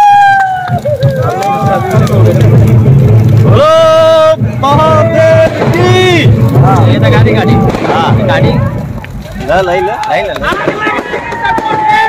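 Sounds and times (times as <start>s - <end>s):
loud low rumble: 0.5s - 11.7s
scattered voices: 1.1s - 12.0s.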